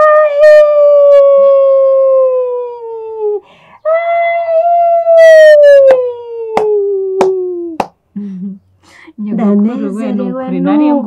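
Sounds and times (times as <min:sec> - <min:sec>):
sharp hand claps: 0:06.6 - 0:08.0.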